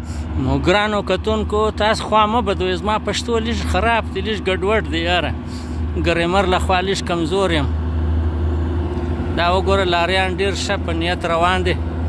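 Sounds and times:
heavy diesel truck engines droning: 0.0s - 12.0s.

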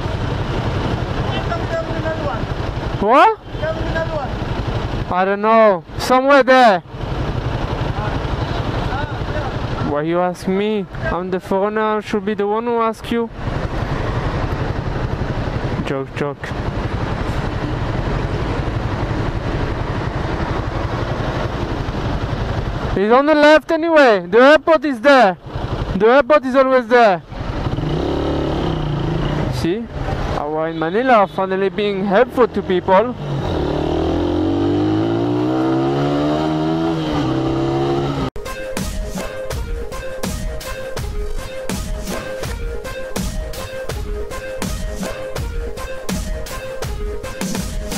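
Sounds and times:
motorcycle engine running: 0.0s - 6.0s, 6.8s - 11.3s, 13.3s - 23.1s, 25.4s - 26.0s, 27.2s - 30.5s.

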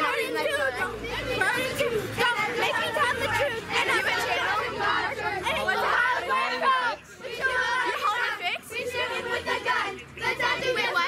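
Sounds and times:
young voices chattering: 0.0s - 11.0s.

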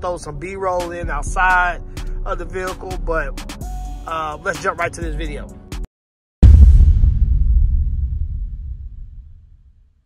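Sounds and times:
deep boom with low rumble: 6.4s - 10.0s.

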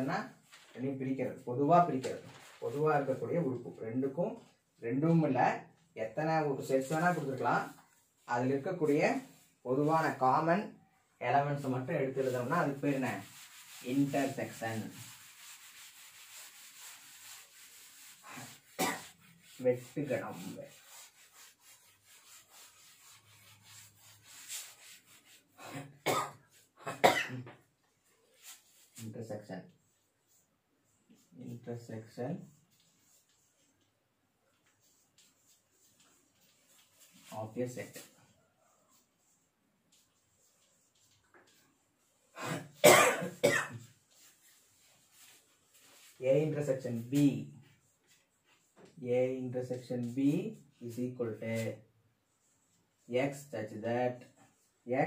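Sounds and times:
cloth rubbing on blackboard: 6.6s - 10.2s, 11.4s - 26.8s, 27.8s - 53.5s
man clearing throat: 25.7s - 27.6s, 42.4s - 43.8s
man coughing: 25.7s - 27.6s, 42.4s - 43.8s.

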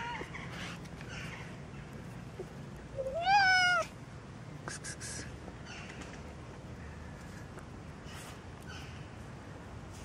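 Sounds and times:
cat meowing: 3.0s - 3.9s.

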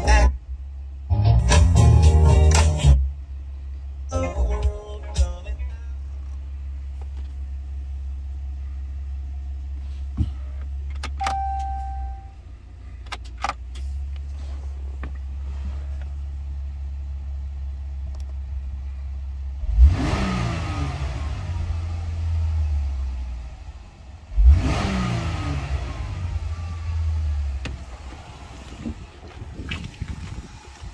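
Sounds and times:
truck engine idling and revving: 0.0s - 30.9s.

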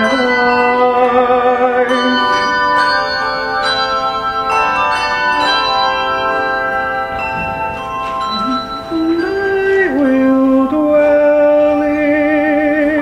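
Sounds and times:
handbell choir playing chords: 0.0s - 13.0s.

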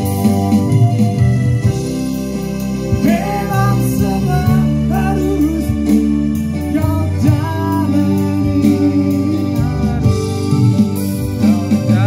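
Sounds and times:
electric guitar: 0.0s - 12.0s
keyboard: 0.0s - 12.0s
man singing: 2.9s - 12.0s.

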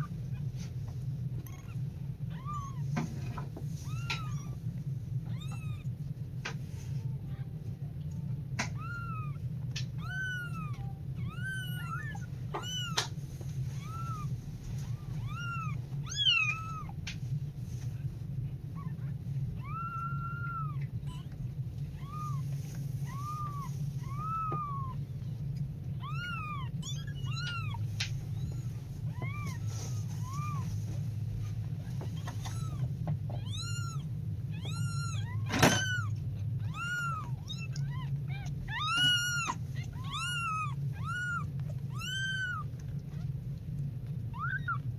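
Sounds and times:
kittens mewing: 0.0s - 17.2s, 18.2s - 44.9s.

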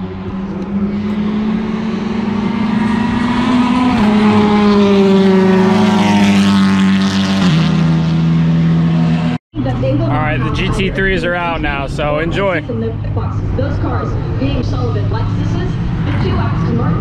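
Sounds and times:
racing car engine shifting gears: 0.0s - 16.9s.

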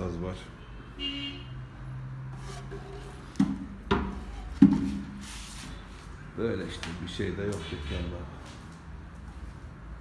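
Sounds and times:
sharp wooden knocks: 3.4s - 5.0s.

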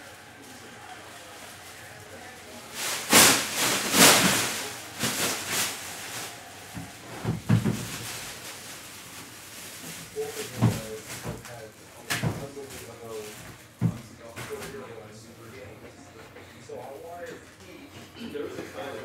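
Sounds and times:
packaging rustling and tearing: 1.3s - 13.8s.

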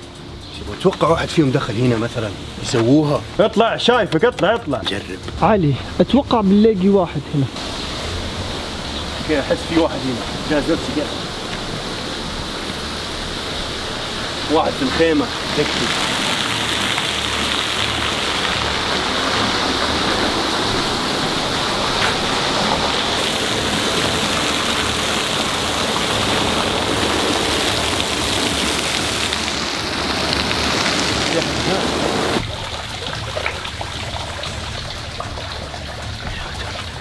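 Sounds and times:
waterfall pouring into pond: 7.6s - 37.0s.

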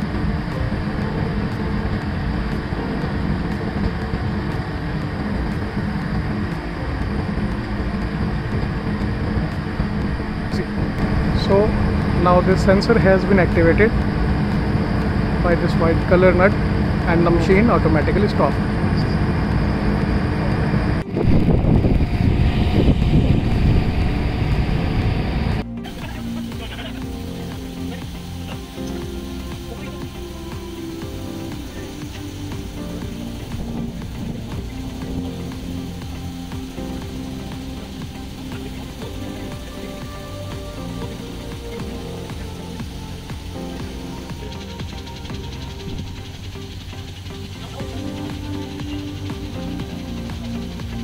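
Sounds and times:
loud rushing outdoor noise: 0.0s - 51.0s
quiet background music: 0.0s - 51.0s.

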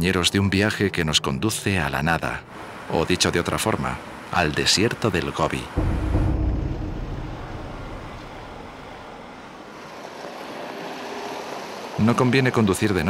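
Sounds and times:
wind: 0.0s - 13.0s.

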